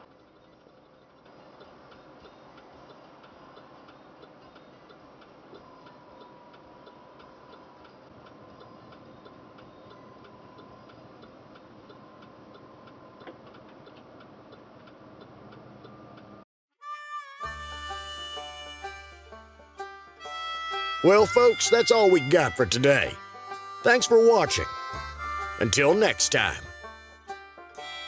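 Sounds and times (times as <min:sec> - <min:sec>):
low engine and road hum: 0:00.0 - 0:16.4.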